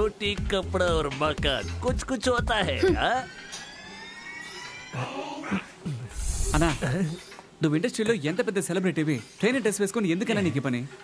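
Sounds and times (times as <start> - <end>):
rising electronic sweep: 6.1 - 7.0.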